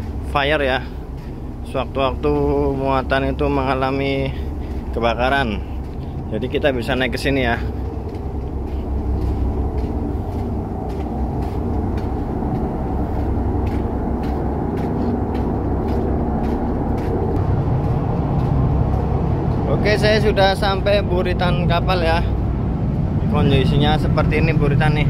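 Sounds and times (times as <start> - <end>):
faint footsteps on steel deck: 0.0 - 25.0
ship engine and water rumble: 0.0 - 25.0.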